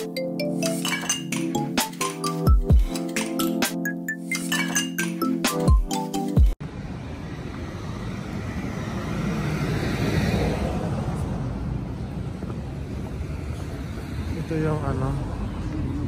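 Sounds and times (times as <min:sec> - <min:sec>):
background traffic: 0:06.6 - 0:16.0
car passing on road: 0:06.6 - 0:16.0.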